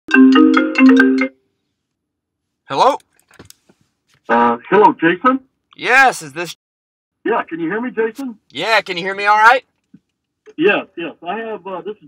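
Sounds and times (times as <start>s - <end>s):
phone ringtone marimba notes: 0.1s - 1.4s.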